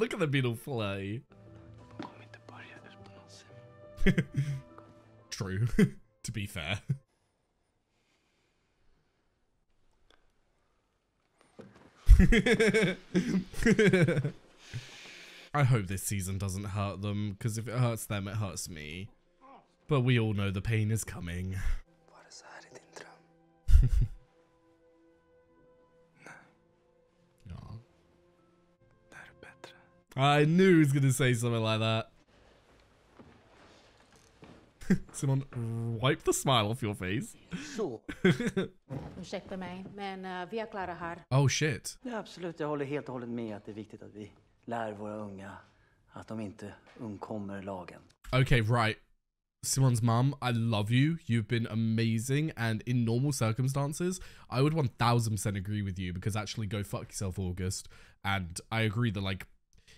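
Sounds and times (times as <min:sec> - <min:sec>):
soft-spoken dialogue: 0:00.0 - 0:03.7, 0:14.7 - 0:24.0, 0:27.4 - 0:27.9, 0:29.0 - 0:32.1, 0:34.8 - 0:49.0
faint background music: 0:00.0 - 0:07.0, 0:12.2 - 0:49.0
faint whispered words: 0:02.0 - 0:03.5, 0:22.1 - 0:23.3.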